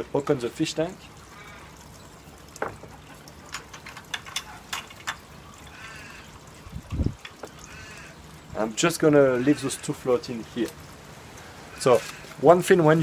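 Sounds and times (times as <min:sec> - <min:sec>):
water trickling into fish tank: 0:00.0 - 0:13.0
sharp clicks and knocks: 0:02.6 - 0:05.3.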